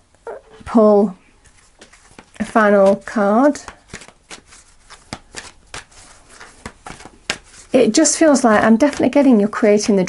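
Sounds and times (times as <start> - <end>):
cards being shuffled: 1.4 - 10.0.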